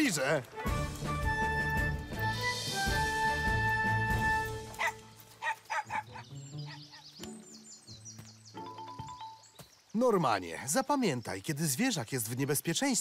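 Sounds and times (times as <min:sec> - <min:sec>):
light background music: 0:00.0 - 0:10.2
small dog barking: 0:04.8 - 0:06.2.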